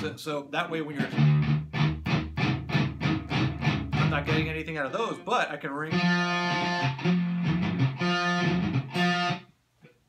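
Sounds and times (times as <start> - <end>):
electric guitar single notes: 1.0 - 9.5.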